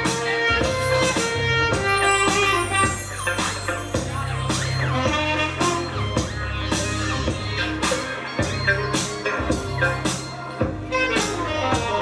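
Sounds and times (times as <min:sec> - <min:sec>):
backing track with bass and beat: 0:00.0 - 0:12.0
saxophone playing: 0:00.0 - 0:12.0.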